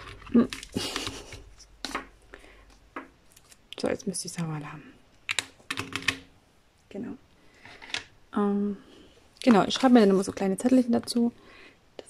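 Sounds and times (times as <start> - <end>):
plastic pots clicking: 0.0 - 2.1.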